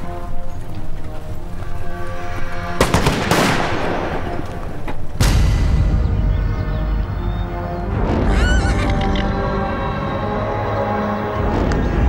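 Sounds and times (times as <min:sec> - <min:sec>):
dramatic film score: 0:00.0 - 0:12.0
horse whinnying: 0:08.2 - 0:09.4.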